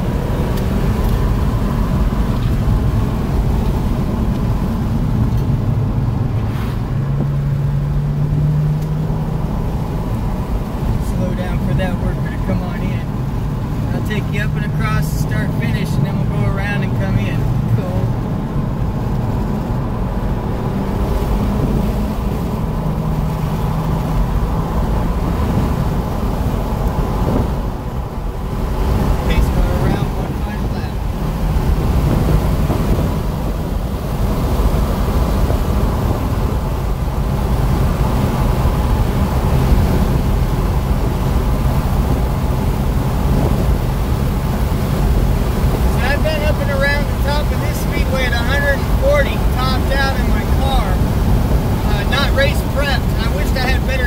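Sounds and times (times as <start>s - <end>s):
car engine drone inside cabin: 0.0s - 54.0s.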